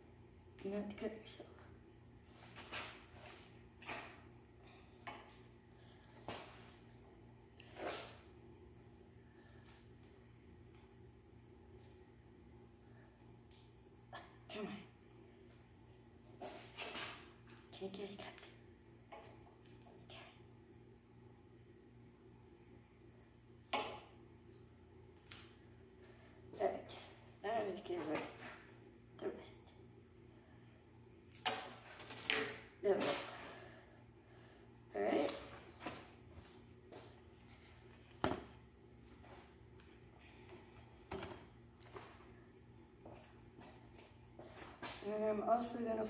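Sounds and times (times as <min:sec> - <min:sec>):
steady low hum: 0:00.0 - 0:46.0.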